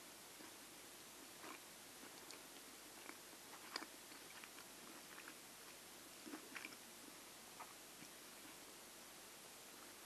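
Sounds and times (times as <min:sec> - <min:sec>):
low hiss: 0:00.0 - 0:10.0
chewing and mouth clicks: 0:01.3 - 0:06.8.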